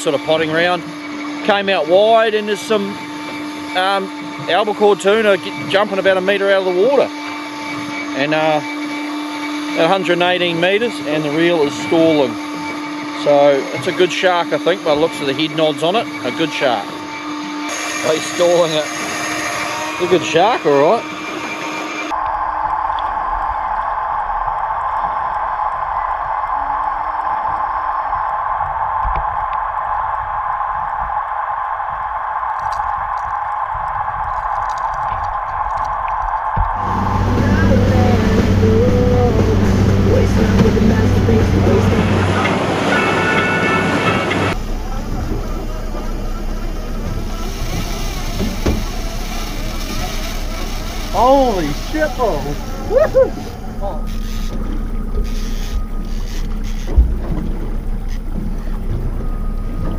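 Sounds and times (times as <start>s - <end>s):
electric fishing reel motor whining: 0.0s - 41.9s, 45.5s - 59.8s.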